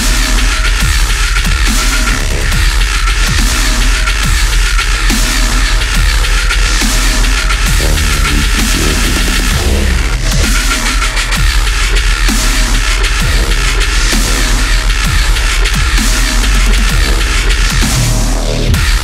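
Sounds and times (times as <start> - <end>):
deep sub-bass: 0.0 - 19.0
drums: 0.0 - 19.0
heavy dubstep music: 0.0 - 19.0.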